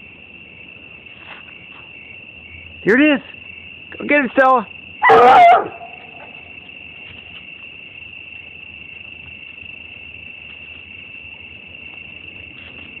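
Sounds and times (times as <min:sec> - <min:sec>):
crickets chirring: 0:00.0 - 0:13.0.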